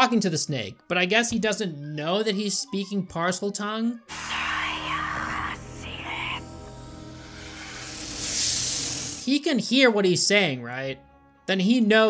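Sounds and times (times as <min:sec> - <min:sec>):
hissing whispered voice: 0:04.1 - 0:06.5, 0:07.2 - 0:09.3.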